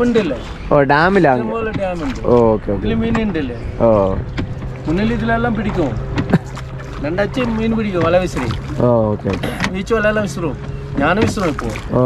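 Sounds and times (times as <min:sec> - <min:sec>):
oars rowing boat: 0:00.0 - 0:12.0
steady low rumble: 0:00.0 - 0:12.0.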